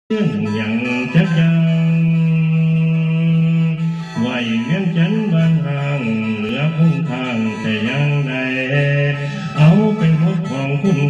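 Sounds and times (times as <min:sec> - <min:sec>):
mouth organ held chord: 0:00.1 - 0:11.0.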